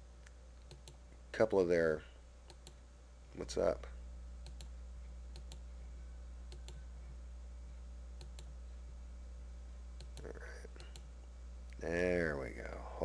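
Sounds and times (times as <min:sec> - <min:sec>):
low electrical hum: 0:00.0 - 0:13.0
faint computer mouse clicks: 0:06.5 - 0:06.8.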